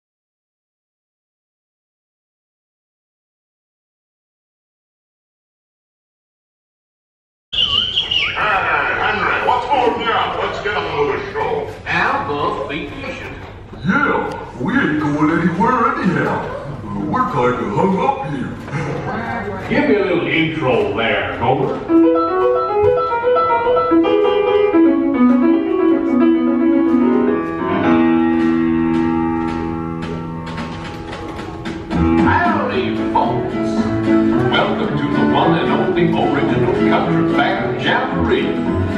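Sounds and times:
squeaky chirps sliding in pitch: 7.5s - 8.6s
people talking: 8.2s - 21.9s, 32.2s - 38.6s
piano intro music: 21.8s - 38.9s.

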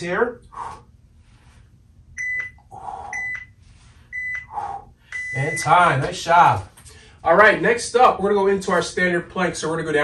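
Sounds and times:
man breathing: 0.4s - 1.8s, 2.6s - 5.3s, 6.8s - 7.2s
interval timer beeping: 2.2s - 5.8s.

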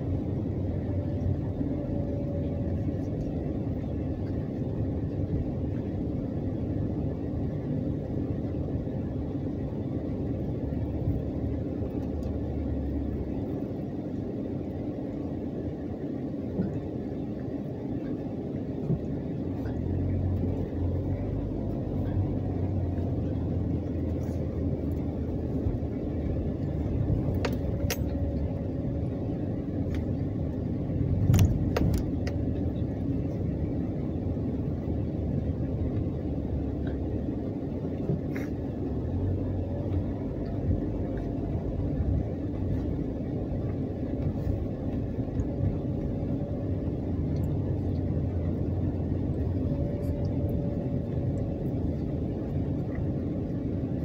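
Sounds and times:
engine and road rumble: 0.0s - 54.0s.

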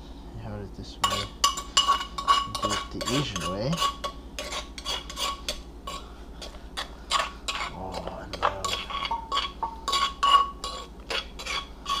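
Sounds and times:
spoon scraping a mortar bowl: 1.0s - 12.0s.

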